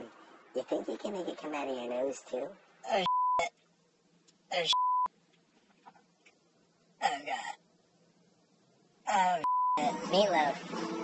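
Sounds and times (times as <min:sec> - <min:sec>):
censor bleep: 0:03.0 - 0:03.5, 0:04.7 - 0:05.1, 0:09.4 - 0:09.8.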